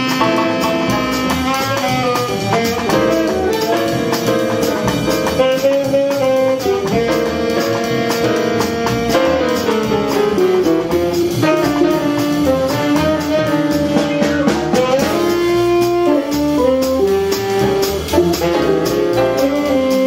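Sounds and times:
grand piano: 0.0 - 20.0
plucked upright bass: 0.0 - 20.0
saxophone melody: 0.0 - 20.0.

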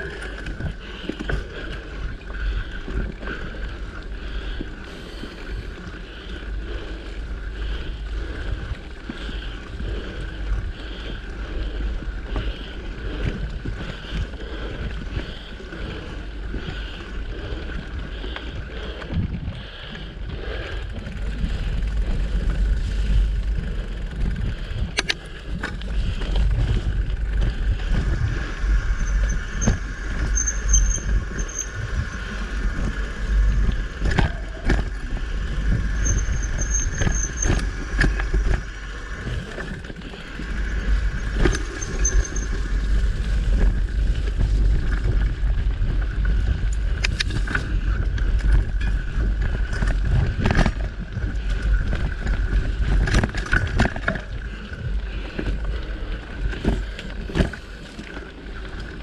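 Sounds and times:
bike rattling on rough trail: 0.0 - 59.0
wind on microphone: 17.4 - 57.6.

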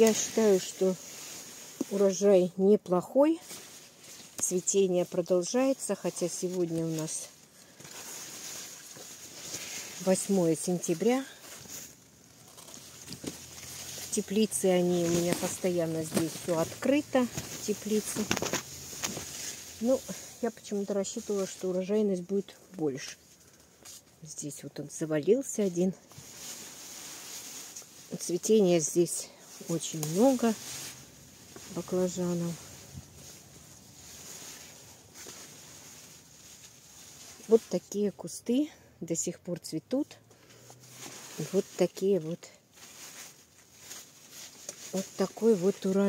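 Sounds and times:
faint steady hiss: 0.0 - 38.1
leaves rustling: 0.0 - 38.3, 40.5 - 46.0.

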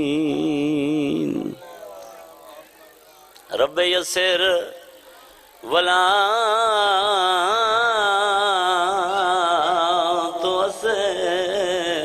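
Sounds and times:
man chanting: 0.0 - 2.6, 3.5 - 5.0, 5.6 - 12.0.

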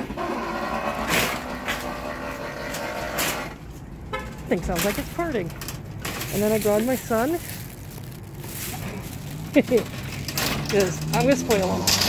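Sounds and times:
shopping cart wheels rumbling: 0.0 - 3.6, 4.5 - 12.0
wire basket rattling: 4.4 - 12.0.

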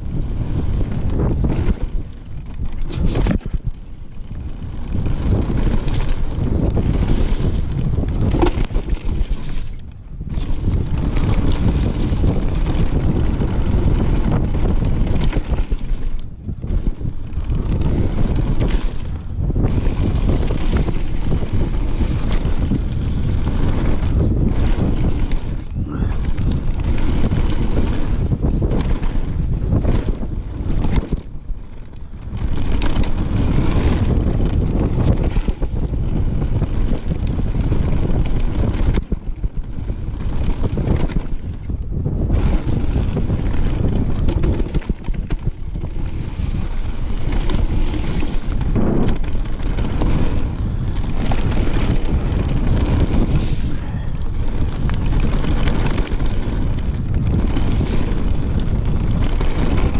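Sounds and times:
bike clicking and rattling: 0.0 - 59.9
tyres rumbling on dirt: 0.0 - 59.9
wind buffeting microphone: 0.0 - 59.9.

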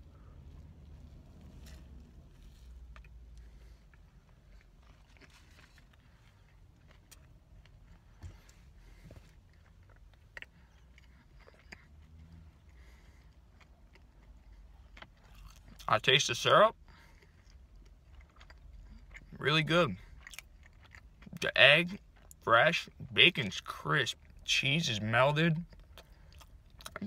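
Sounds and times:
person chewing food: 0.0 - 15.9, 16.7 - 24.4, 25.6 - 27.0
low steady rumble: 0.0 - 27.0.

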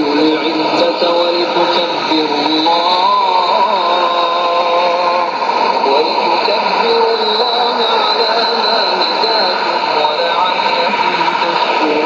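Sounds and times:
radio static hiss: 0.0 - 12.0
voice reciting over radio: 0.0 - 12.0.

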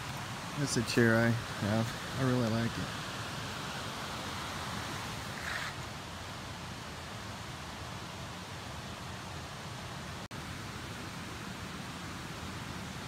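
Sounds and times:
creek water rushing over rocks: 0.0 - 13.0.

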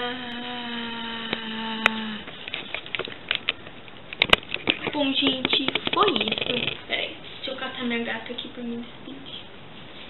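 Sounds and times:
girl singing long aah: 0.0 - 2.3
handling rustles and clicks: 2.4 - 6.8.

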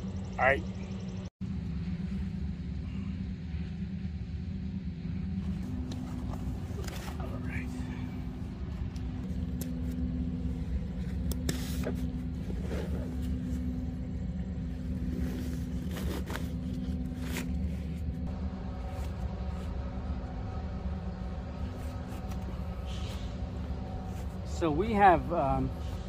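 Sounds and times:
low rumble with hum: 0.0 - 26.0.

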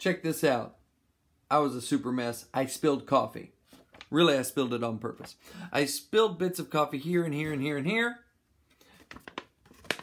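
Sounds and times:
paper crinkling and crackling: 3.7 - 4.3, 8.9 - 10.0.

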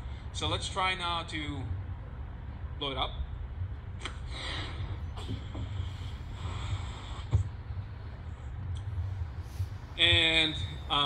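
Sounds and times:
steady low hum: 0.0 - 11.0
breaths puffed into balloon: 4.3 - 8.0.

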